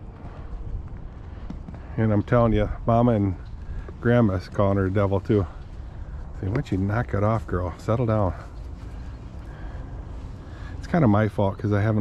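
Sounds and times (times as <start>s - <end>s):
hoofbeats on dirt: 0.0s - 9.7s
wind rumbling on microphone: 0.0s - 12.0s.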